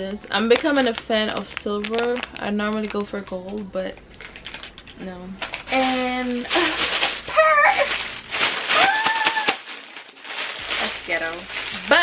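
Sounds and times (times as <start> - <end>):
plastic packaging crinkling: 0.5 - 12.0.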